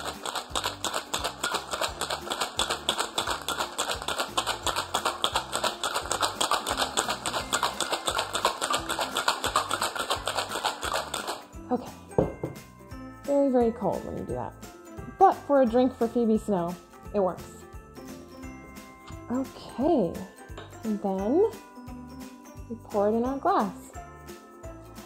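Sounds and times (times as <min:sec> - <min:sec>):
ice rattling in cocktail shaker: 0:00.0 - 0:11.6
background music: 0:00.0 - 0:25.0
shaker knocking on counter: 0:12.2 - 0:12.6.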